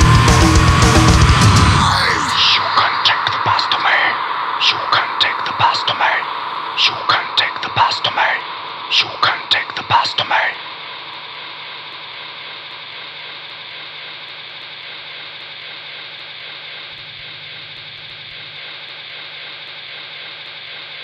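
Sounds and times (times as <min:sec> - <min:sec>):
static-like hiss: 0:00.0 - 0:21.0.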